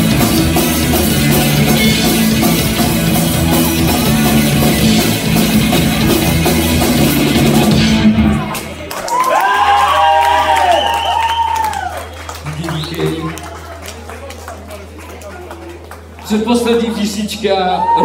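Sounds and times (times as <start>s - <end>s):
punk rock band playing live: 0.0s - 8.8s.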